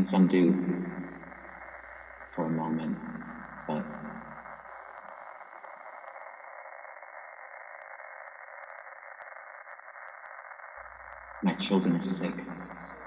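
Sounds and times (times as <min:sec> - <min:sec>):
radio static hiss: 0:00.0 - 0:13.0
faint scattered ticks: 0:00.6 - 0:13.0.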